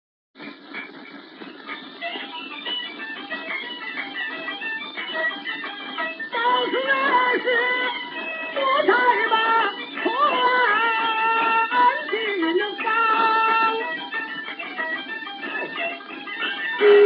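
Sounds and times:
chinese opera music: 6.1 - 17.0.

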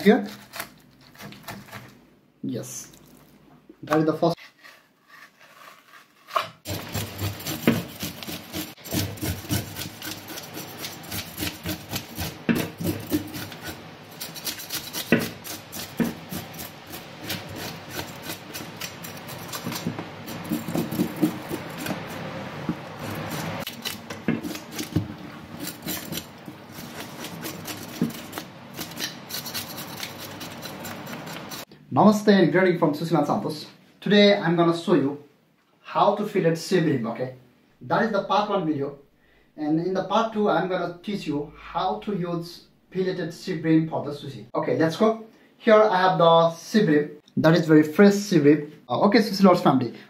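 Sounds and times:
knife scraping fish scales: 0.1 - 2.0, 4.4 - 31.7.

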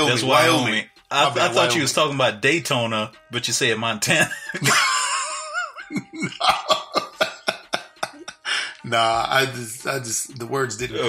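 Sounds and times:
person laughing hard: 4.3 - 8.6.

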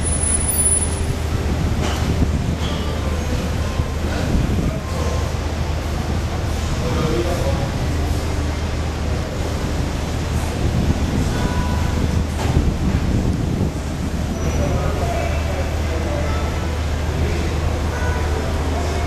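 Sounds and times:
street noise: 0.0 - 19.0
faint indistinct voices: 0.8 - 19.0.

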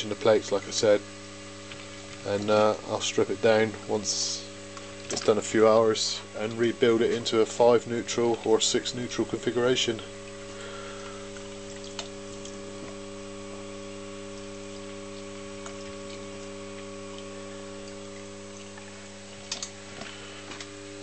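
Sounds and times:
transformer mains hum: 0.0 - 21.0.

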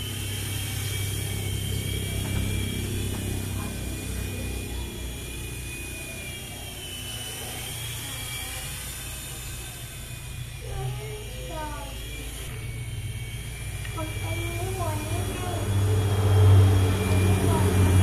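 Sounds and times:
rc helicopter motor whine: 0.0 - 18.0.

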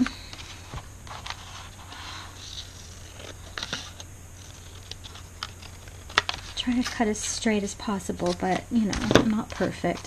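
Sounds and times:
scissors snipping paper: 8.2 - 10.0.

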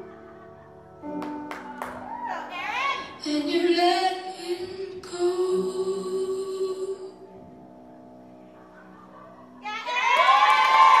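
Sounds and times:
audience cheering and screaming: 1.4 - 2.7, 9.6 - 11.0
high-pitched shout: 9.6 - 11.0.

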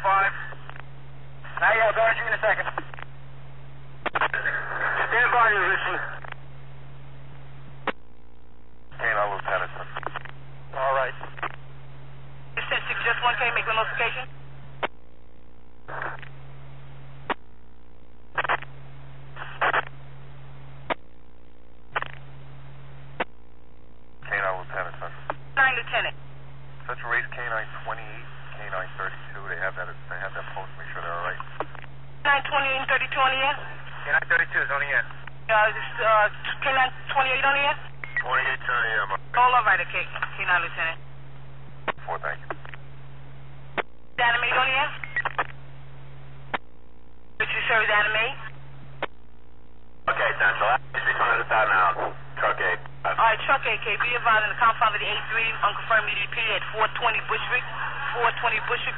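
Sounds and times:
radio voice transmissions: 0.0 - 0.8, 1.4 - 3.0, 4.1 - 6.4, 8.9 - 11.6, 12.6 - 14.3, 19.4 - 19.9, 24.2 - 26.1, 26.8 - 41.0, 41.9 - 42.7, 47.4 - 48.5, 50.0 - 58.9
low radio hum: 0.0 - 58.9
radio click: 0.5 - 0.9, 2.5 - 3.1, 4.0 - 5.1, 6.0 - 6.4, 7.8 - 8.0, 9.3 - 10.4, 11.1 - 11.6, 14.8 - 15.0, 15.9 - 16.4, 17.2 - 17.5, 18.3 - 18.7, 19.4 - 20.0, 20.8 - 21.1, 21.9 - 22.3, 23.2 - 23.4, 24.8 - 25.5, 31.3 - 32.0, 39.8 - 40.8, 41.8 - 42.8, 43.7 - 45.6, 48.3 - 49.2.

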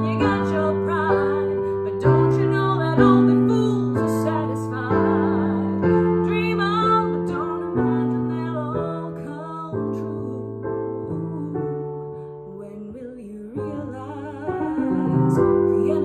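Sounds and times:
piano chords: 0.0 - 16.0
woman singing a slow ballad: 0.0 - 16.0.

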